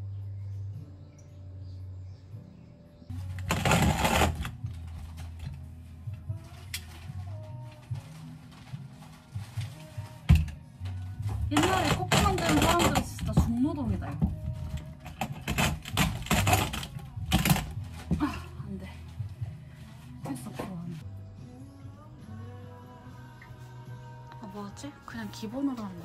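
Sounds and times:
background music: 0:00.0 - 0:26.0
hand coffee grinder grinding beans: 0:03.2 - 0:05.3, 0:11.5 - 0:13.5, 0:15.2 - 0:17.8
person's voice: 0:11.5 - 0:14.3, 0:24.3 - 0:26.0.

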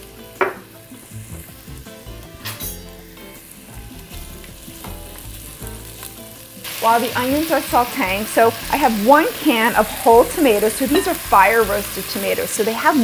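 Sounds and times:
onions sizzling in a pot: 0:00.0 - 0:13.0.

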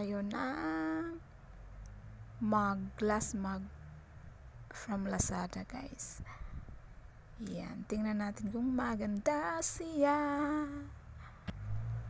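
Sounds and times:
low rumble: 0:10.6 - 0:12.0.

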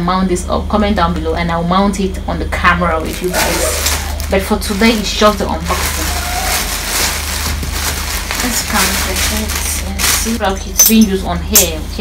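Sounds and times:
plastic wrapping crinkling: 0:03.0 - 0:11.2.

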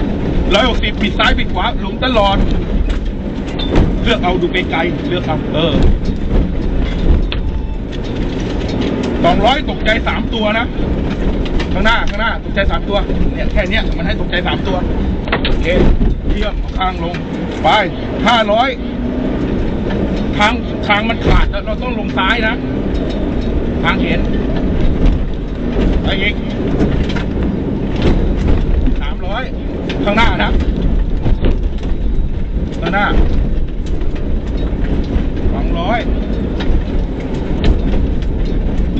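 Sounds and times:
car body rattling: 0:00.0 - 0:38.9
car engine: 0:00.0 - 0:38.9
knocks from rough road: 0:00.0 - 0:38.9
tyre and road noise: 0:00.0 - 0:38.9.

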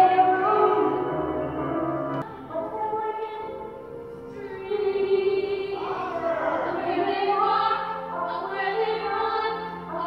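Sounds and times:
women singing together: 0:04.3 - 0:10.0.

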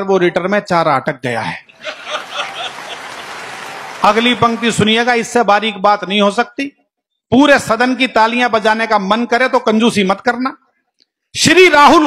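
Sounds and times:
audience applauding: 0:01.7 - 0:05.3.

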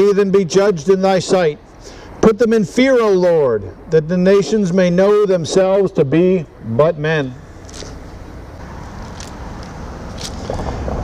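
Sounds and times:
car approaching: 0:06.4 - 0:11.0
tyre noise: 0:07.6 - 0:11.0.

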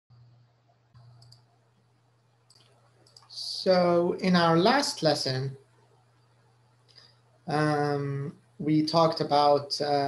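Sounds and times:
computer mouse clicks: 0:00.1 - 0:03.3
faint low hum: 0:00.1 - 0:10.0.

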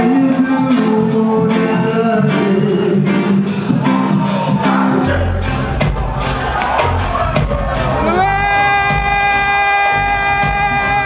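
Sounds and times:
live reggae band playing: 0:00.0 - 0:11.0.

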